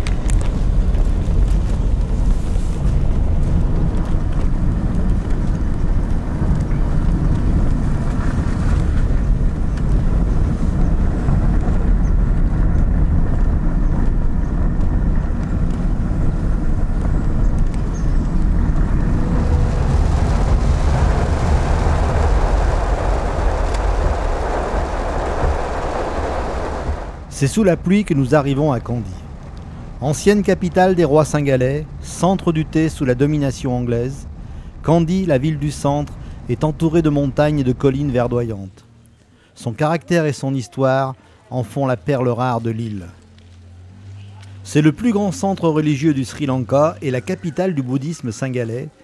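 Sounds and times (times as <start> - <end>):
car engine and road noise: 0.0 - 49.0.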